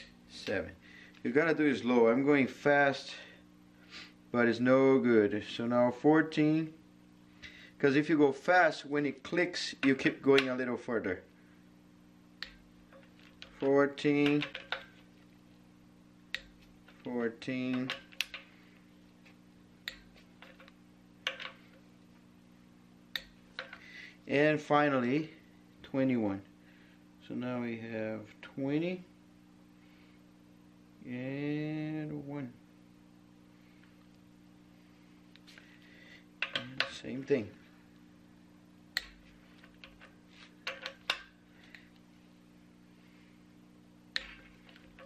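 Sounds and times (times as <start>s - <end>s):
wrench knocks: 19.9s - 21.7s, 36.4s - 37.0s, 39.0s - 41.3s.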